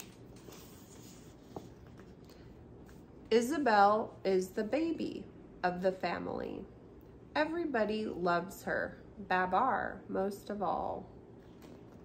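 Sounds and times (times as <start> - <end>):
paper pages rustling: 0.0 - 2.2.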